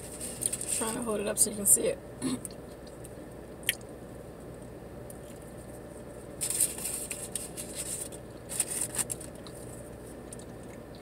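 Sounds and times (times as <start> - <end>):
paper and plastic cup rustling: 0.0 - 1.0, 6.4 - 9.8
low steady hum: 0.0 - 11.0
burrito bite and chewing: 6.4 - 11.0.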